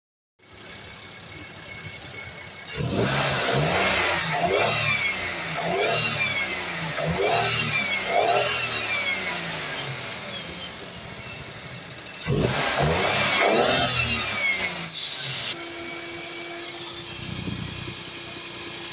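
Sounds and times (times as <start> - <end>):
car engine idling and revving: 0.4 - 18.9.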